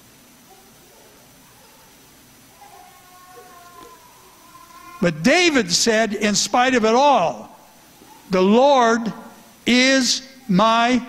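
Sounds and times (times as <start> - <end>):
faint high voice-like sound: 0.5 - 5.1.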